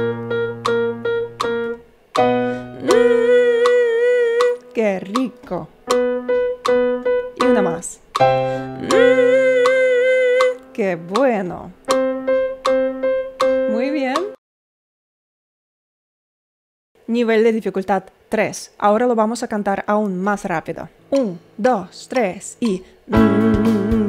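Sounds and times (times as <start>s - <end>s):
electric keyboard chords: 0.0s - 14.4s, 23.1s - 24.0s
woman singing vibrato exercise: 2.4s - 5.8s, 7.4s - 11.8s, 21.2s - 24.0s.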